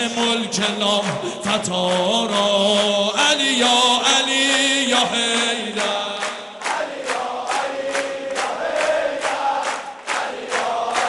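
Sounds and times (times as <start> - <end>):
amplified man chanting: 0.0 - 11.0.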